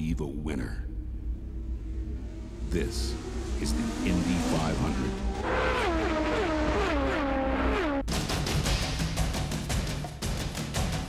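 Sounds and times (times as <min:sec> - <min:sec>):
racing cars passing: 0:01.0 - 0:08.1
background music: 0:08.0 - 0:11.0.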